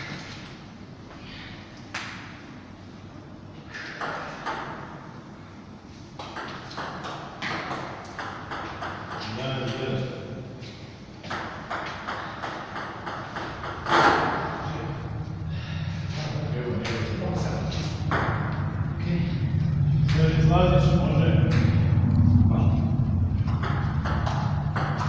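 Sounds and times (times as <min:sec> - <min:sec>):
voices: 0:14.6 - 0:23.0.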